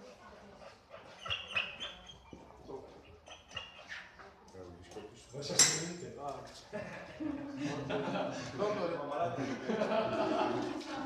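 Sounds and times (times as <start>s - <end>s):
dog whining: 0.9s - 4.4s
people talking: 7.2s - 11.0s.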